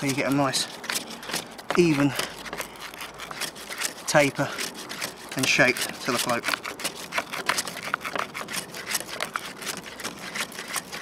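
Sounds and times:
sandpaper scratching wooden skewer: 0.0s - 11.0s.

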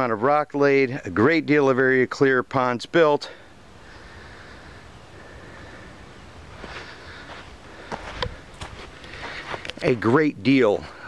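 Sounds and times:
faint outdoor background: 0.0s - 11.0s
footsteps on sandy earth: 5.4s - 10.1s.

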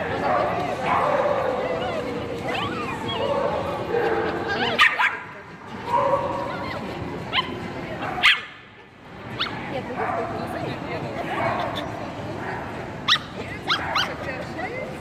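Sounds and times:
murmur of voices: 0.0s - 15.0s
dog yipping: 6.6s - 8.6s, 9.4s - 9.6s, 13.1s - 14.2s.

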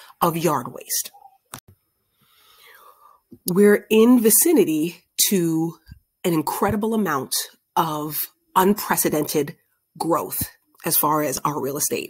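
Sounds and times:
woman speaking: 0.0s - 1.3s, 3.4s - 12.0s
faint breath drawn: 2.1s - 3.2s.

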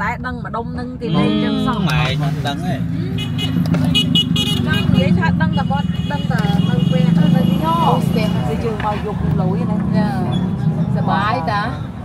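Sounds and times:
vehicle traffic hum: 0.0s - 12.0s
voices talking and calling: 0.0s - 12.0s
car horns: 3.1s - 8.9s.

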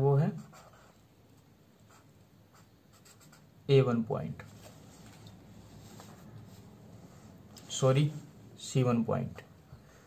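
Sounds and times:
marker scratching on paper: 0.2s - 1.1s, 1.8s - 3.6s.

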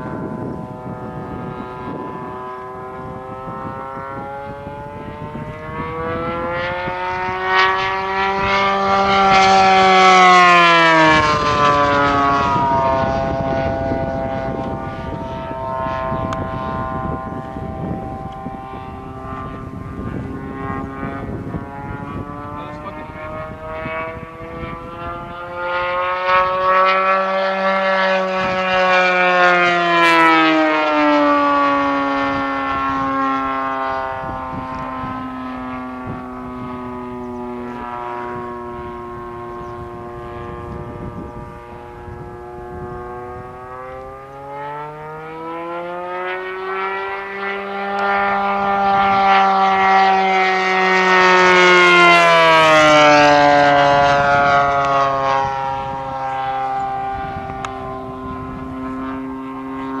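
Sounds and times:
model plane engine flying past: 0.0s - 60.0s.

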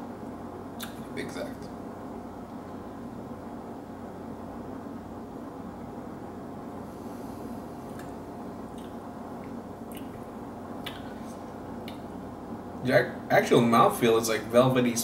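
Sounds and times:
low room hum: 0.0s - 15.0s
mouth sounds of tasting: 0.8s - 1.1s, 10.8s - 12.1s.

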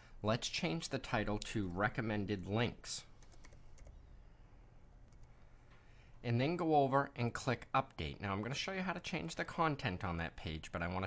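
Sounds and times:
typing on computer keyboard: 3.2s - 4.0s.

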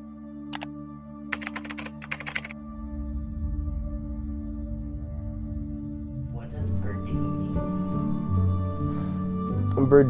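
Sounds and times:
soft ambient music: 0.0s - 10.0s
computer keyboard typing: 1.3s - 2.5s.

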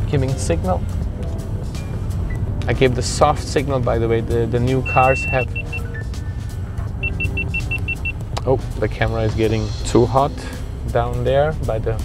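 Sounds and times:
car cabin rumble: 0.1s - 9.7s
short high electronic beeps: 4.9s - 6.1s, 7.0s - 8.2s.

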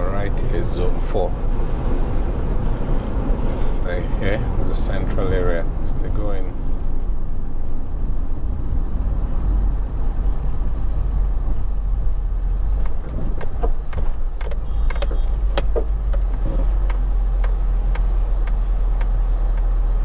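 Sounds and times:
car driving rumble inside cabin: 0.0s - 20.0s
small clicks and knocks: 12.8s - 19.7s.

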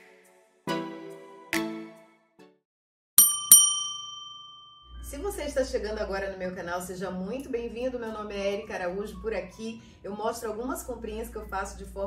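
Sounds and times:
bell chime dings: 3.2s - 5.1s.

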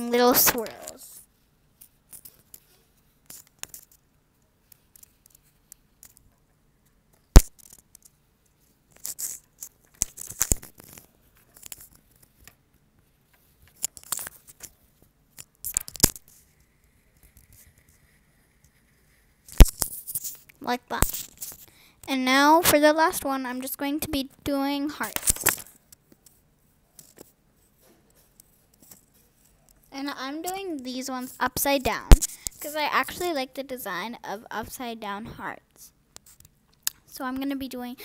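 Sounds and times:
oil pastel scratching on paper: 16.3s - 21.7s.

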